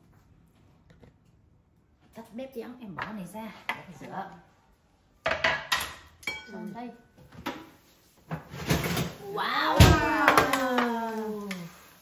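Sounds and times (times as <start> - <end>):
dishes and cutlery clattering: 5.2 - 6.8.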